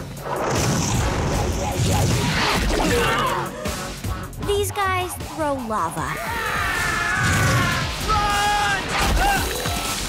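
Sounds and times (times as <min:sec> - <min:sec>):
dramatic action music: 0:00.0 - 0:10.0.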